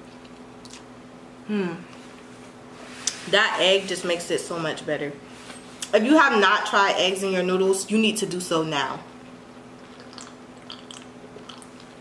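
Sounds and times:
person drinking and swallowing: 9.8 - 12.0.

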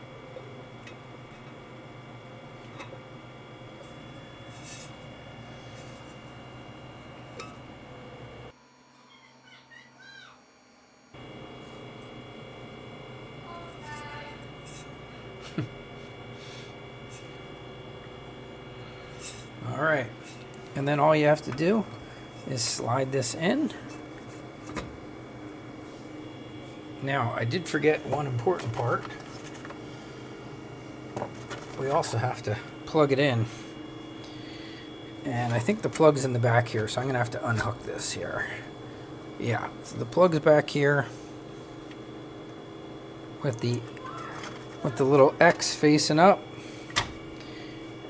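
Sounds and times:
steady electrical hum: 0.0 - 48.0
faint steady tones: 11.0 - 48.0.

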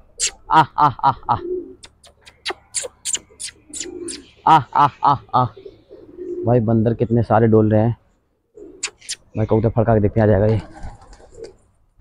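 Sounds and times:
pigeon cooing: 0.0 - 6.7, 8.4 - 9.6, 10.6 - 11.6
quick sharp clicks: 8.8 - 9.2.

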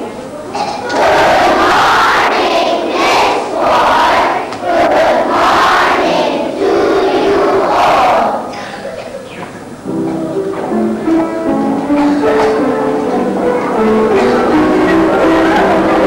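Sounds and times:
children shouting in unison: 0.8 - 8.5.

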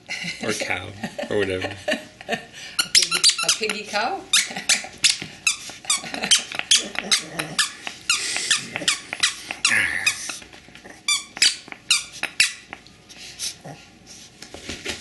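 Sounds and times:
toy squeaker squeaking: 2.8 - 6.0, 11.1 - 12.6.

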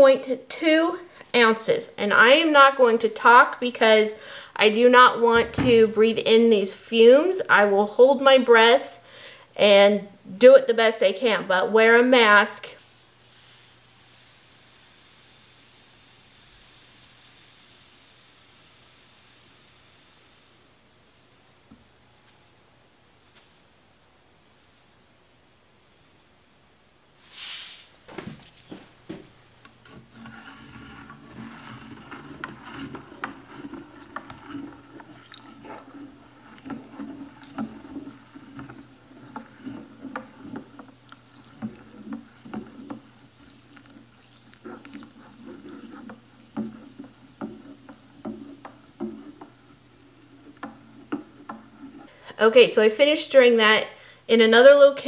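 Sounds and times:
short hiss: 12.8 - 15.2, 27.2 - 28.2
spatula scraping metal pitcher: 29.9 - 52.2.

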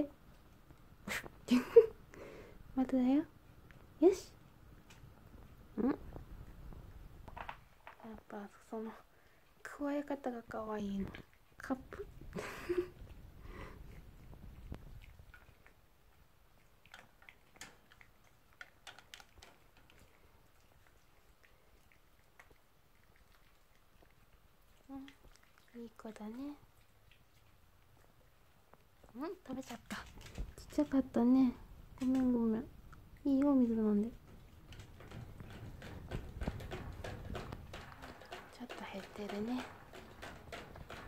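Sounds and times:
dog lapping at water bottle spout: 9.3 - 41.0
dog chewing crunchy treat: 34.2 - 41.0.

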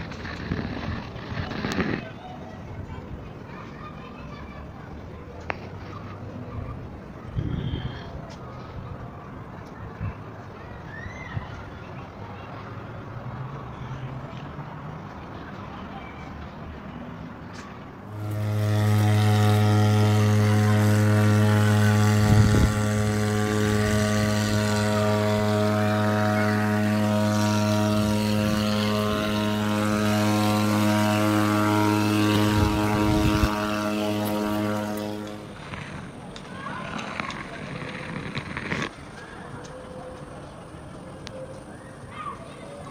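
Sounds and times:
outdoor background noise: 0.0 - 42.9
low machine hum: 18.0 - 35.8.

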